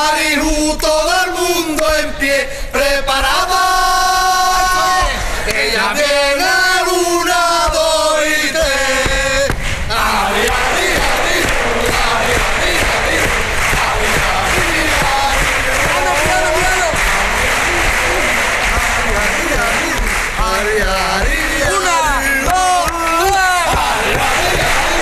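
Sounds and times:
audience singing along: 0.0 - 25.0
men singing together: 0.0 - 25.0.

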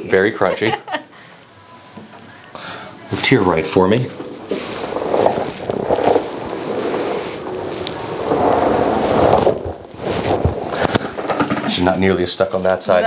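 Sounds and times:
fabric rustling on lapel microphone: 3.1 - 11.9.

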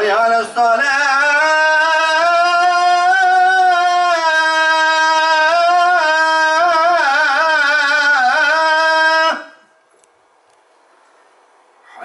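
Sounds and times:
man singing into a microphone: 0.0 - 9.7.

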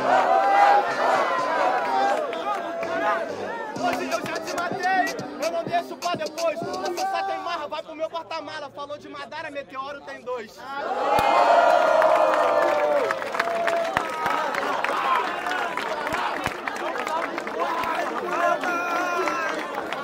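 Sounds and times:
crowd shouting and cheering: 0.0 - 8.2, 10.6 - 20.0.

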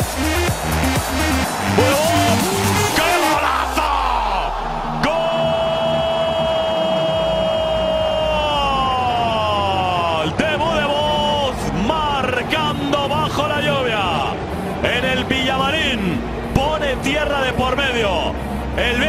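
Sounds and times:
stadium crowd noise: 0.0 - 19.0
excited shouting: 1.5 - 11.2
commentator shouting goal: 1.8 - 13.8.

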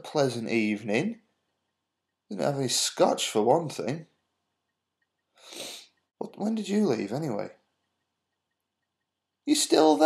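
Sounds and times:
man sniffing: 5.4 - 6.0.

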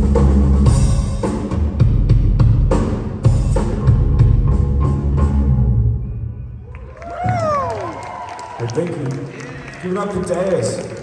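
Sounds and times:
post-punk band playing live: 0.0 - 7.4.

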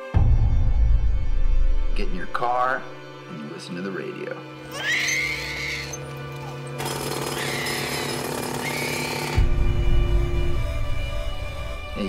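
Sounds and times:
background music: 0.0 - 12.0
jackhammer hammering: 6.3 - 9.9.

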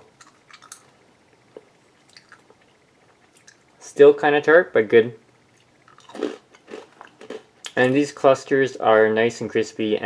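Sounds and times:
faint chewing crunches: 0.0 - 3.7, 5.5 - 8.1.

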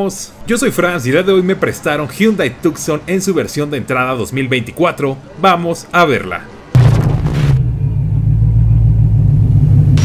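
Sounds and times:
low rumble: 6.8 - 10.0.

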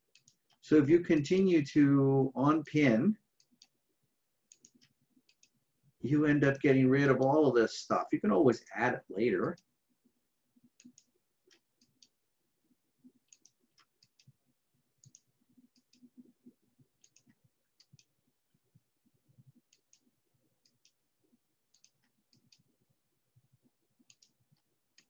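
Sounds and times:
faint computer mouse clicks: 24.0 - 24.7.

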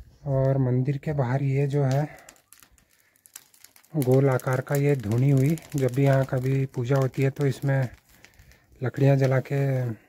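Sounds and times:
dry grass crunching underfoot: 1.9 - 10.0
person talking: 3.9 - 8.0, 8.8 - 10.0.

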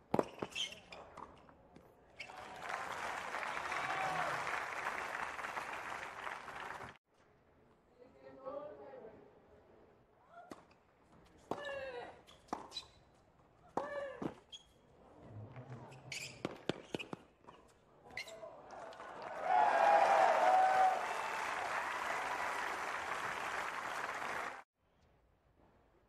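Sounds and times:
crowd applauding and cheering: 2.2 - 7.0, 18.6 - 24.7.

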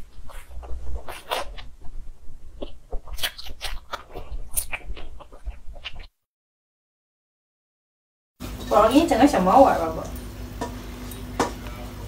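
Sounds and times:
crunching and chewing: 0.0 - 6.1.

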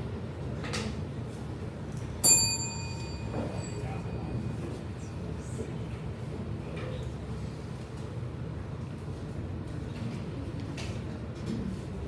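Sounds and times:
low room hum: 0.0 - 12.0
small bell ringing: 2.2 - 4.6.

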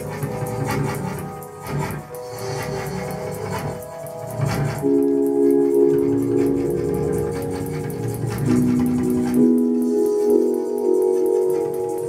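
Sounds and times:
fast light ticking pulse: 0.0 - 12.0
organ-like synth chord: 0.0 - 12.0.

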